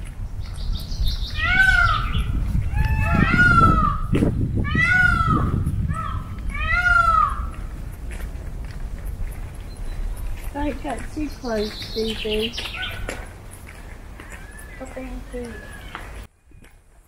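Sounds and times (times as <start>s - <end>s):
peacocks calling: 0.3s - 16.3s.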